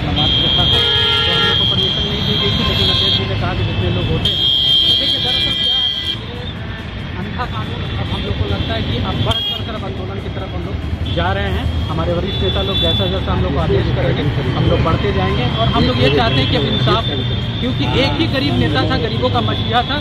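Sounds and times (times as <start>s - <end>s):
street traffic noise: 0.0s - 20.0s
vehicle horn long high tones: 0.2s - 6.3s.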